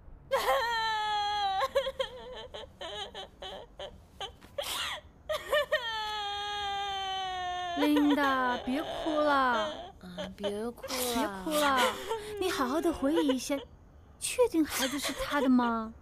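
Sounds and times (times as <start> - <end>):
woman crying and wailing: 0.3 - 13.7, 14.7 - 16.0
woman sobbing and gasping: 0.3 - 13.7, 14.6 - 16.0.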